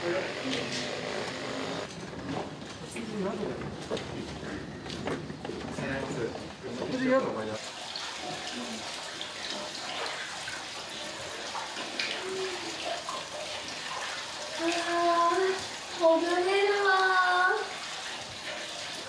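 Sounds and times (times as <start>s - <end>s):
bath water running and splashing: 5.8s - 19.0s.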